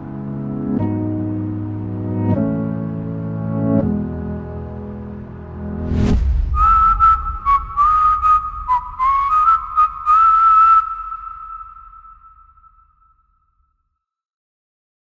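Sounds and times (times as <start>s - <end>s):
piano and string chord: 0.0s - 10.0s
whistled melody: 6.5s - 13.4s.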